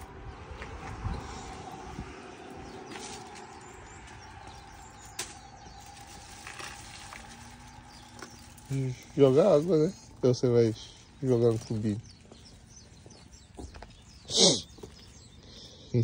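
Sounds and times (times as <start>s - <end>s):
plastic bag crinkling: 4.4s - 9.8s.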